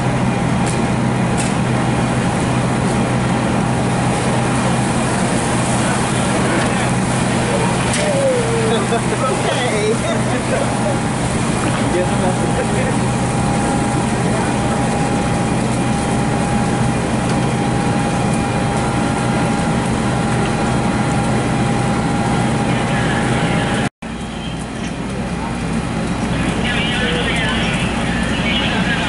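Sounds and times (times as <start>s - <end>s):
fire engine droning with whine: 0.0s - 29.0s
faint voices: 5.2s - 15.6s, 22.3s - 29.0s.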